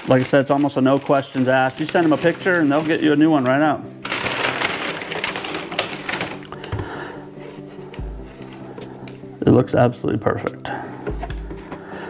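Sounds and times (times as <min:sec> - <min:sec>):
plastic and foam wrapping rustling: 0:00.0 - 0:09.3.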